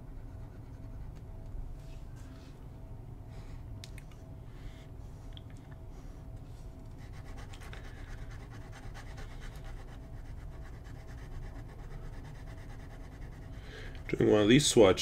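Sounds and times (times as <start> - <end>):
low room hum: 0.0 - 15.0
pen nib scratching on paper: 7.0 - 13.6.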